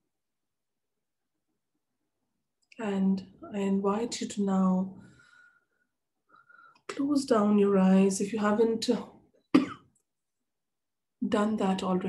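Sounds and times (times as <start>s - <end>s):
woman coughing: 9.5s - 9.9s.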